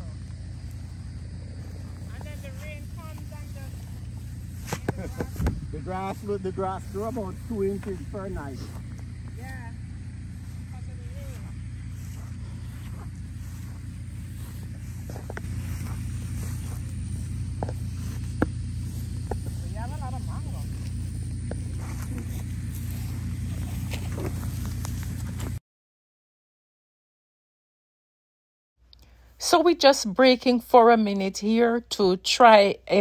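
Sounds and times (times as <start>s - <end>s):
faint voices: 1.5s - 24.5s.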